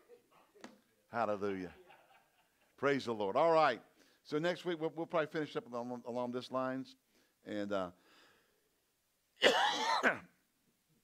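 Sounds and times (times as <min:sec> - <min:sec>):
man coughing: 0:09.4 - 0:10.3.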